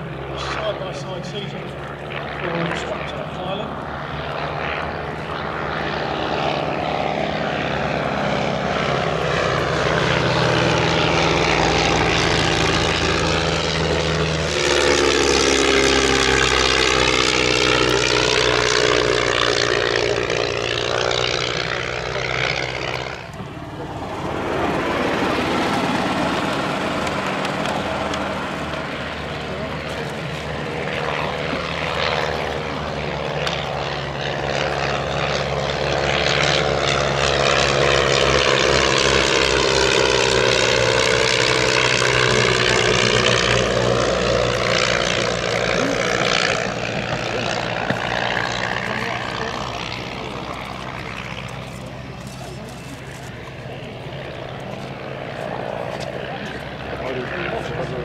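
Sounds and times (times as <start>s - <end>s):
biplane engines and propellers: 0.0s - 58.0s.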